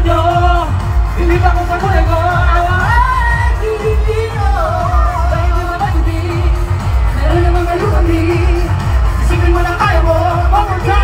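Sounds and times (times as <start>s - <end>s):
heavy bass beat: 0.0s - 11.0s
live pop music: 0.0s - 11.0s
person singing: 0.0s - 11.0s.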